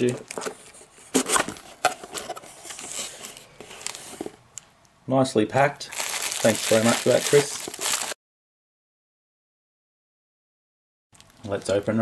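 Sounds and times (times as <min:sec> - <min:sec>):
cardboard lid rustling: 0:00.1 - 0:04.4.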